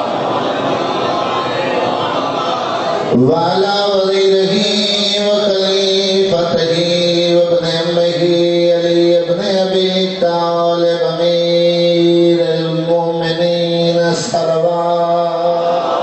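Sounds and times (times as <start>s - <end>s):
man chanting into a microphone: 3.1s - 16.0s.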